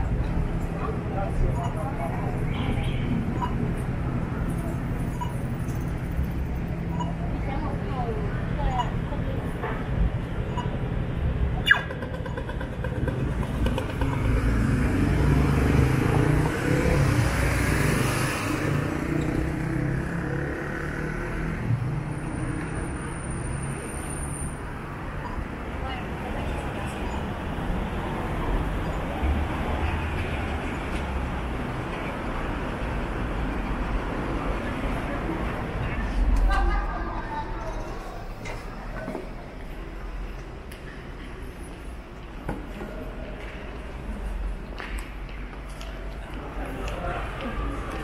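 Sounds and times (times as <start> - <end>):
traffic noise: 0.0 - 48.0
vehicle passing: 12.8 - 24.0.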